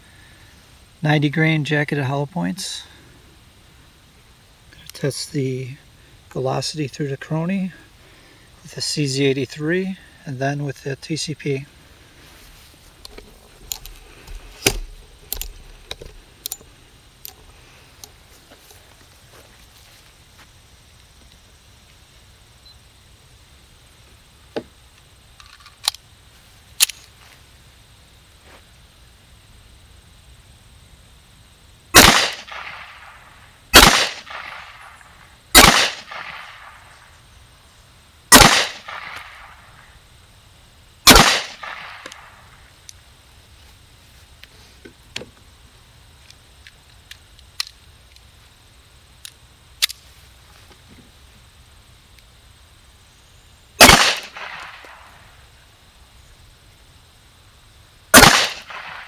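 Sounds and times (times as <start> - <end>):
faint outdoor background: 0.0 - 59.0
pistol shots with echo: 32.0 - 33.1, 33.8 - 34.9, 35.6 - 36.8, 38.3 - 39.6, 41.1 - 42.0, 53.8 - 55.0, 58.2 - 59.0.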